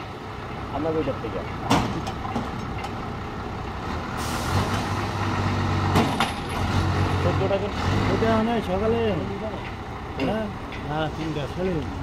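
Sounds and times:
forklift engine running: 0:00.0 - 0:12.0.

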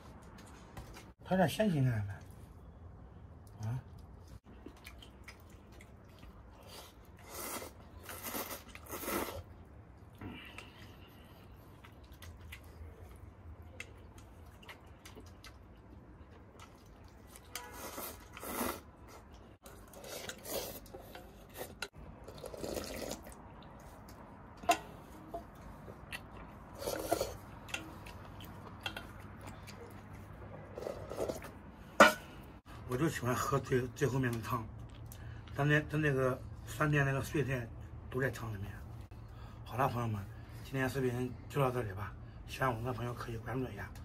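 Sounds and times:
chewing: 0:03.4 - 0:31.6, 0:34.3 - 0:35.6
slurping noodles and soup: 0:04.6 - 0:13.2, 0:16.4 - 0:24.2, 0:24.9 - 0:32.0.

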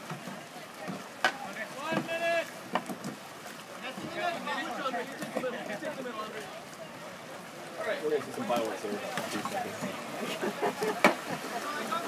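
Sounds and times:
people calling out across water: 0:00.1 - 0:02.8, 0:03.5 - 0:12.0.

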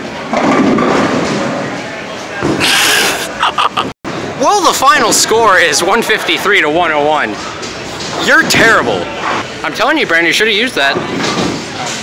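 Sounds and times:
bowling pins crashing: 0:00.2 - 0:01.8.

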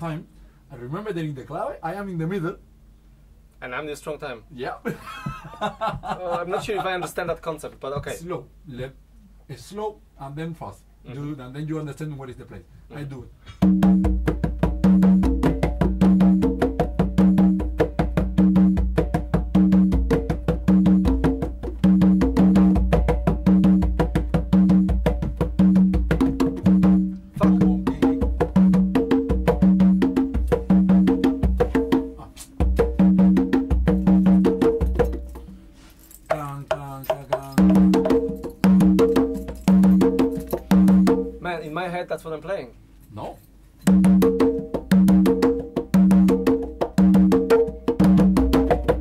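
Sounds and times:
congas played by hand: 0:13.5 - 0:41.5, 0:43.8 - 0:49.0.

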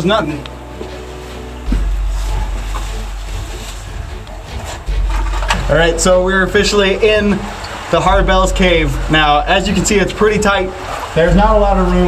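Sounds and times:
faint rustling: 0:00.0 - 0:12.0
low wind rumble: 0:00.0 - 0:12.0.

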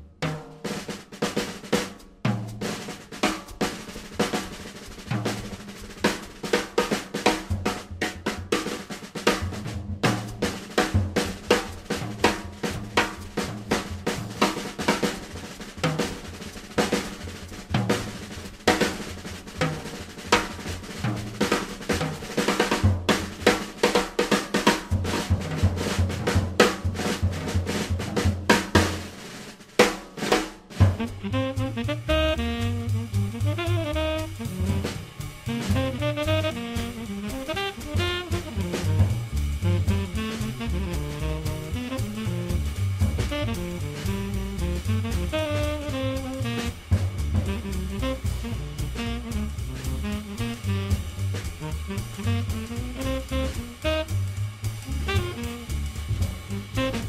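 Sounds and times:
jazz drum kit playing: 0:00.0 - 0:57.0
low bass line: 0:31.0 - 0:57.0.

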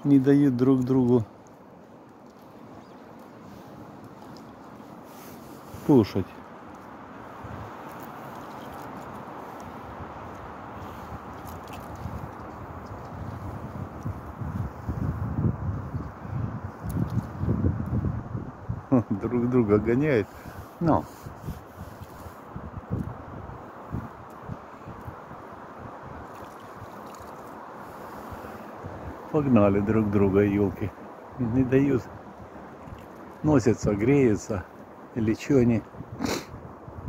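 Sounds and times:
steady outdoor hiss: 0:00.0 - 0:37.0
faint low bumps: 0:02.4 - 0:19.9
wind noise on microphone: 0:02.5 - 0:37.0
low rumbling on microphone: 0:08.5 - 0:20.6.

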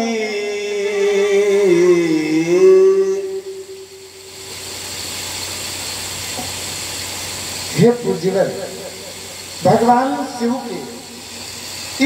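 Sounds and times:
background hiss: 0:00.0 - 0:12.0
man speaking: 0:07.8 - 0:09.0, 0:09.6 - 0:11.0.

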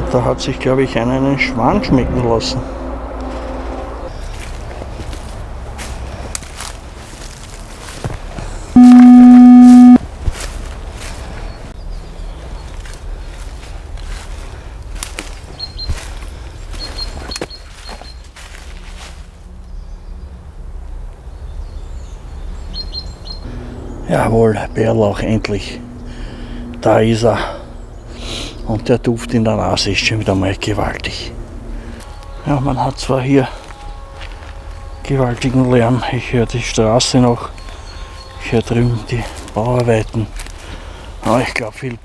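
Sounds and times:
distant road traffic rumble: 0:00.0 - 0:08.7, 0:10.1 - 0:42.0
footsteps crunching on leaf litter: 0:04.1 - 0:08.6, 0:10.1 - 0:19.5, 0:31.8 - 0:36.2, 0:37.4 - 0:42.0
loud buzzing tone: 0:08.8 - 0:10.0, 0:23.4 - 0:28.7.

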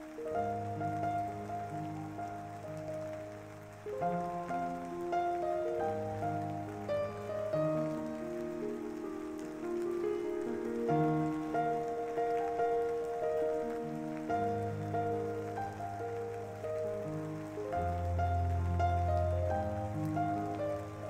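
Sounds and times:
soft background music: 0:00.0 - 0:21.0
steady rain falling: 0:00.0 - 0:21.0.

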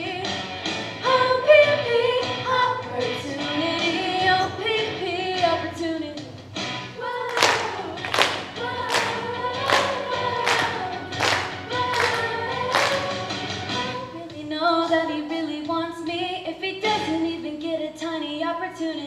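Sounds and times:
girls singing together: 0:07.0 - 0:16.0
sharp claps on the beat: 0:07.3 - 0:13.5.

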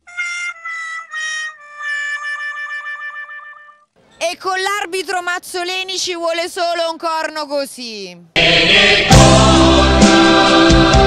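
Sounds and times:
sad trombone sound effect: 0:00.1 - 0:03.9.

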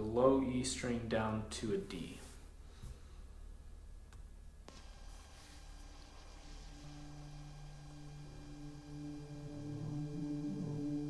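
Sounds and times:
amplifier hum: 0:02.4 - 0:11.0
electric guitar sustained notes: 0:06.2 - 0:11.0.

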